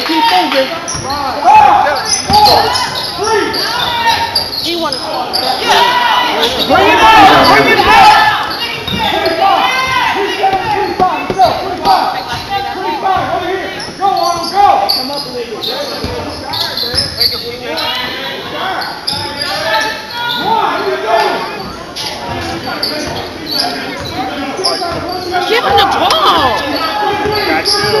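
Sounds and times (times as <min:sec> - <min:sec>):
people shouting in a hall: 0:00.0 - 0:15.0, 0:17.6 - 0:28.0.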